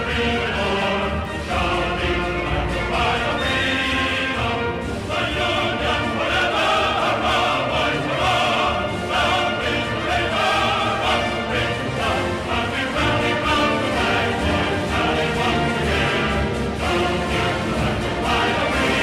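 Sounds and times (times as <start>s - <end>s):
choir singing: 0.0s - 19.0s
orchestral accompaniment: 0.0s - 19.0s.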